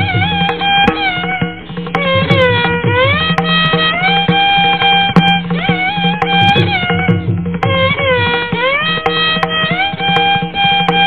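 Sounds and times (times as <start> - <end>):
hand drum strokes: 0.0 - 11.0
violin sliding melody: 0.0 - 11.0.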